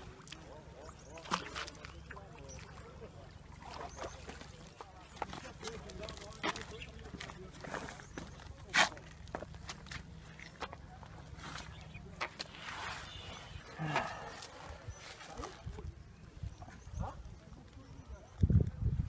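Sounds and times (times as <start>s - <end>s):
faint distant voices: 0.0s - 19.0s.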